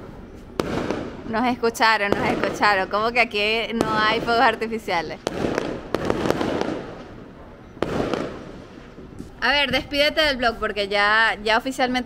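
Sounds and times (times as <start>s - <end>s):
firework bangs: 0.0s - 10.4s
firework crackling: 0.0s - 10.4s.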